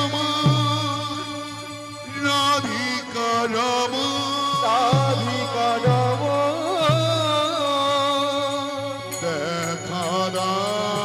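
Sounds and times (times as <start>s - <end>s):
man singing devotional melody: 0.0s - 11.0s.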